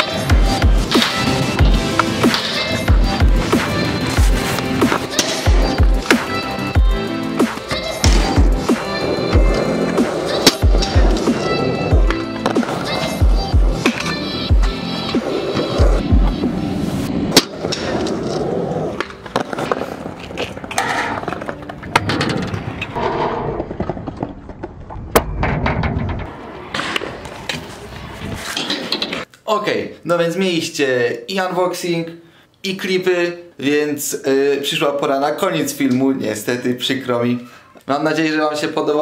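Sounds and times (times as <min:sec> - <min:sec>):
scooter wheels rolling on concrete: 0:00.0 - 0:06.9, 0:07.5 - 0:25.2, 0:26.2 - 0:29.3.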